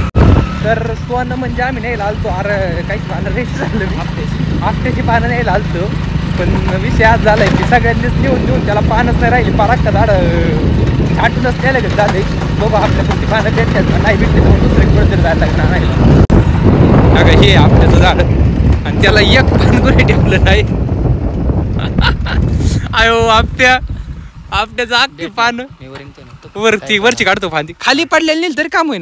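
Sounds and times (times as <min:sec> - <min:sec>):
wind buffeting microphone: 0:00.0 - 0:27.9
man talking: 0:00.6 - 0:16.1, 0:17.1 - 0:20.7, 0:22.7 - 0:23.9, 0:24.5 - 0:29.0.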